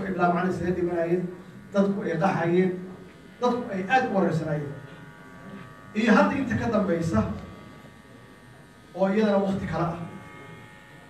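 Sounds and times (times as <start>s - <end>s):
man speaking: 0.0s - 2.8s, 3.4s - 4.8s, 6.0s - 7.6s, 9.0s - 10.2s
faint electrical buzz: 0.0s - 11.0s.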